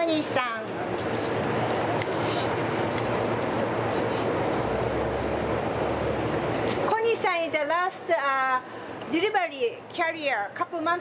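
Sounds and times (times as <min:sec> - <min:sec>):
city street traffic: 0:00.1 - 0:11.0.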